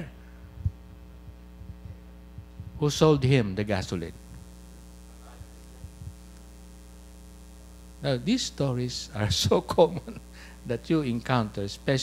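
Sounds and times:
low mains hum: 0.0 - 12.0.

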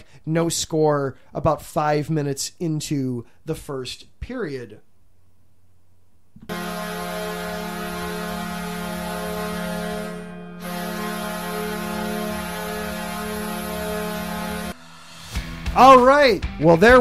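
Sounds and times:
goal horn blasts: 6.4 - 14.8.

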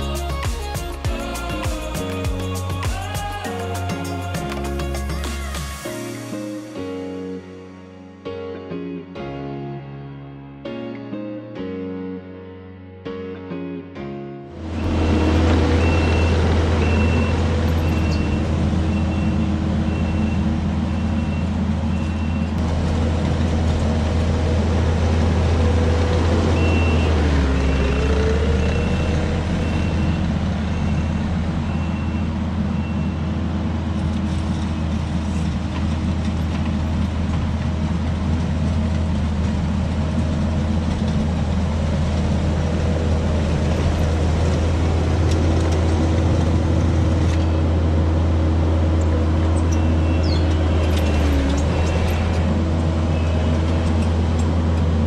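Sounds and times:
diesel engine running: 14.5 - 55.0
backup alarm beeping: 14.8 - 22.6
grading attachment dragging over gravel: 50.3 - 54.6.

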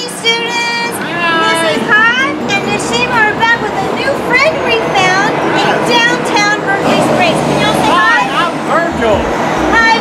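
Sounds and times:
people talking: 0.0 - 10.0
steady background noise: 0.0 - 10.0.

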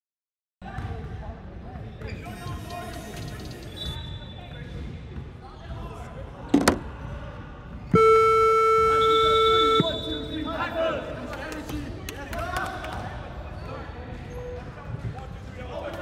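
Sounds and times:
scoreboard buzzer tone: 8.0 - 10.2.

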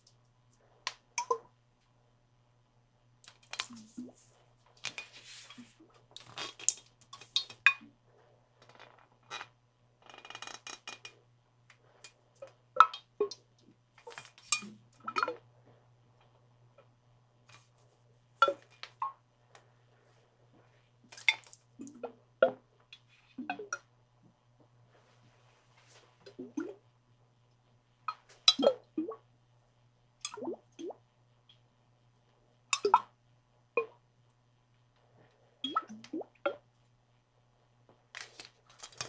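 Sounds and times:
faint low hum: 0.0 - 39.0.

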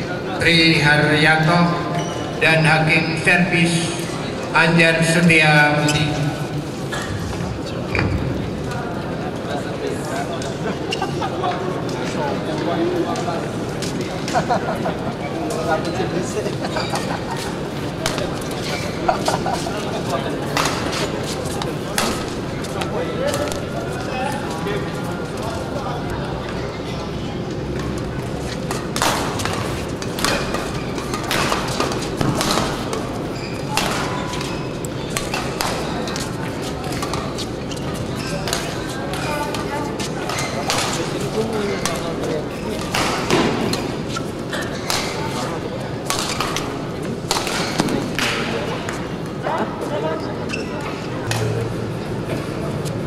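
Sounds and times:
background chatter: 0.0 - 53.0
rackets hitting shuttlecock: 20.5 - 21.1, 21.9 - 23.7, 28.7 - 37.3, 38.4 - 49.0.

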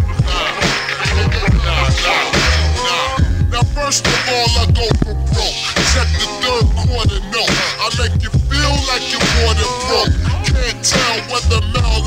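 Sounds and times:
pitched-down rapping: 0.2 - 12.0
slow heavy bass-drum beat: 3.2 - 7.3, 7.9 - 10.6.

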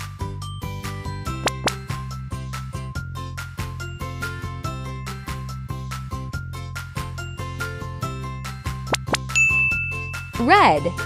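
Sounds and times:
light children's music: 0.0 - 11.0
high ding chime: 9.4 - 10.8.

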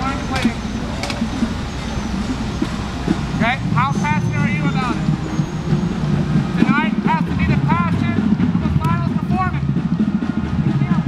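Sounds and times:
man's voice: 0.0 - 0.7, 3.3 - 5.1, 6.5 - 9.7, 10.7 - 11.0
high repeated chirping calls: 0.0 - 6.8
city traffic rumble: 0.0 - 11.0.

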